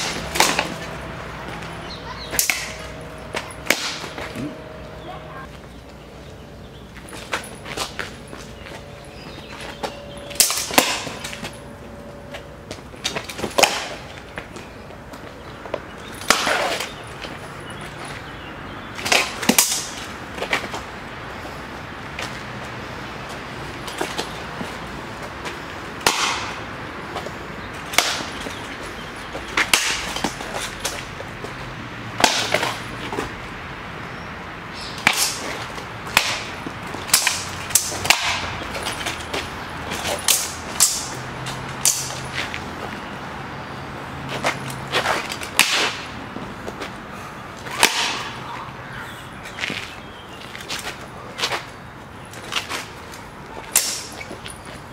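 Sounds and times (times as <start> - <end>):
sabres and bucklers clashing: 0.0 - 4.7, 7.1 - 14.6, 16.0 - 18.4, 19.0 - 20.8, 26.0 - 26.6, 27.8 - 28.8, 29.5 - 31.1, 32.2 - 33.3, 34.9 - 42.7, 44.3 - 46.2, 47.6 - 48.4, 53.7 - 54.7.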